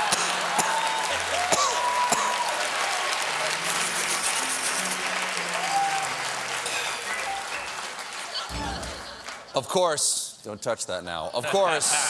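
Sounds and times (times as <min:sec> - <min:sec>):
people cheering: 0:00.0 - 0:09.6
audience applauding: 0:00.0 - 0:09.7.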